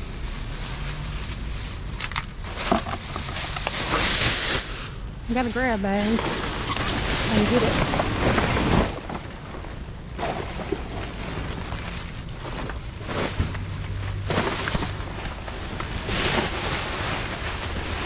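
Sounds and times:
plastic bags and cardboard rustling: 0:00.0 - 0:18.0.

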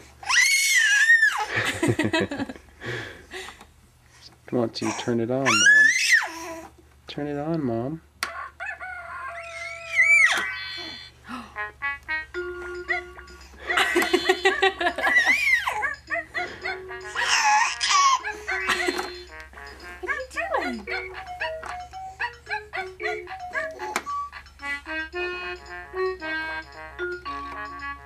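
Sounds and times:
toy playing beeping tune: 0:12.1 - 0:28.0
toy sound effects: 0:19.9 - 0:26.3.

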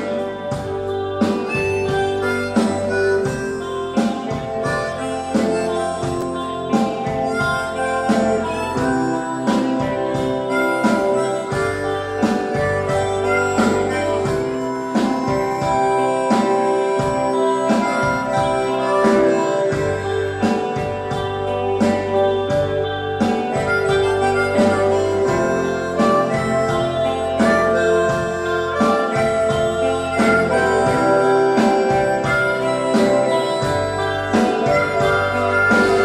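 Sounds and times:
lead guitar notes: 0:00.0 - 0:36.0
rhythm guitar: 0:00.0 - 0:36.0
steady drum beat: 0:00.0 - 0:36.0.

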